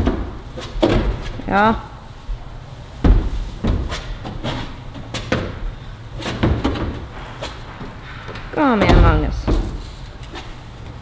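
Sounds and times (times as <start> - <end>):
knocks on climbing wall: 3.0 - 4.4, 8.0 - 9.8.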